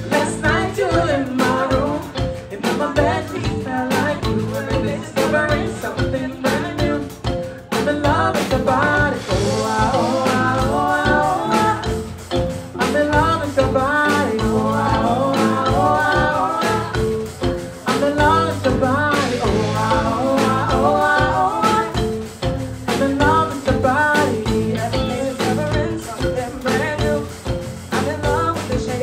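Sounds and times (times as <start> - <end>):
man singing: 0.0 - 12.1, 12.7 - 22.1, 22.8 - 29.0
drum kit: 0.0 - 29.0
electric bass: 0.0 - 29.0
keyboard: 0.0 - 29.0
woman singing: 0.0 - 29.0.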